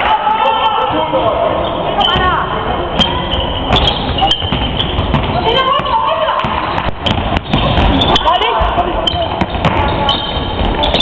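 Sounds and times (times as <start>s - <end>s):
basketball dribbling on floor: 3.7s - 8.7s.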